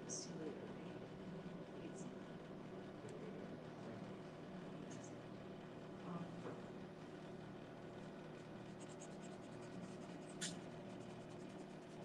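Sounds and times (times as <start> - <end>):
pencil scratching on paper: 8.7 - 12.0.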